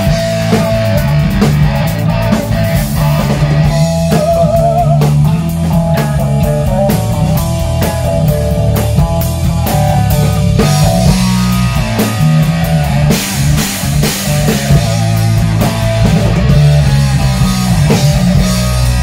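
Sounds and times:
drum kit steady beat: 0.0s - 19.0s
electric bass: 0.0s - 19.0s
electric guitar lead notes: 0.0s - 19.0s.

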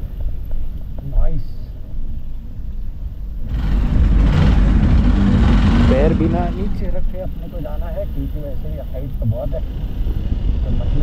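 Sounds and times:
dirt bike engine rumbling: 2.4s - 11.0s
rush of noise: 3.4s - 11.0s.

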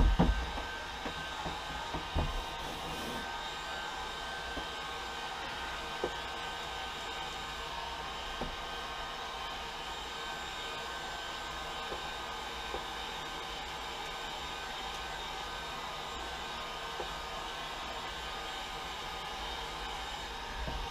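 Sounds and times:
heat gun blowing air: 0.0s - 20.9s.

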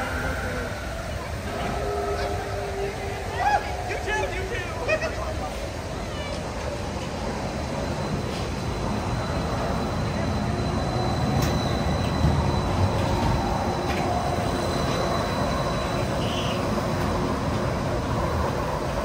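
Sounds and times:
monorail train electric hum: 0.0s - 19.0s.

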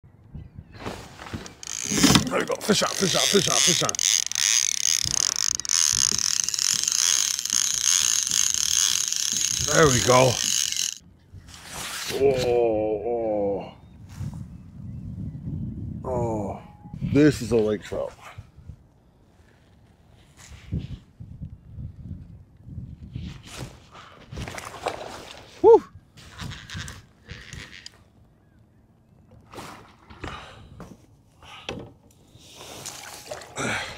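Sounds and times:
fishing reel ratcheting: 1.6s - 11.0s, 26.4s - 27.9s
water splashing: 32.6s - 33.9s.

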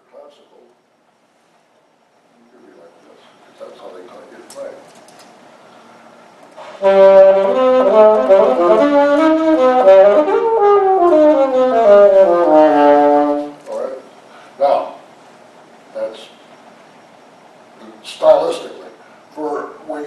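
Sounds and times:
alto saxophone solo: 6.6s - 13.6s.

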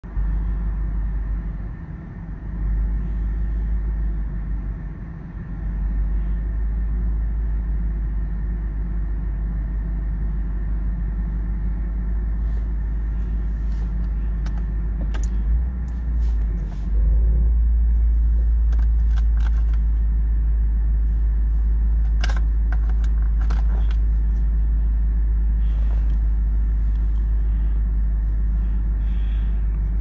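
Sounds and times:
car interior rumble: 0.0s - 30.0s.

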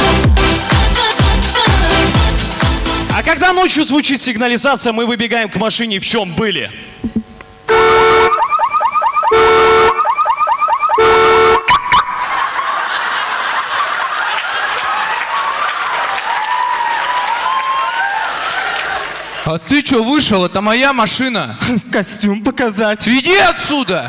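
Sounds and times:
car alarm over speakers: 7.7s - 12.2s
crowd noise: 11.7s - 19.6s.

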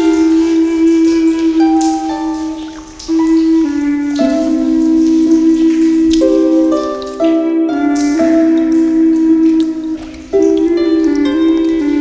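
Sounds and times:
flute playing long slow notes: 0.0s - 12.0s
water dripping: 0.0s - 12.0s.

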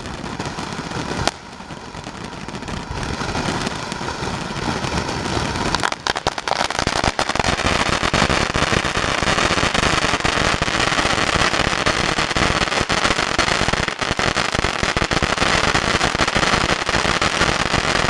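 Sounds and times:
firework fountain hissing and crackling: 0.0s - 18.0s.

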